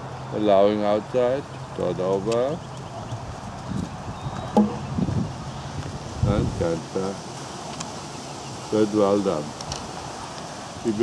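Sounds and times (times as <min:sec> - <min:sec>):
wind on microphone: 0:02.9 - 0:07.2.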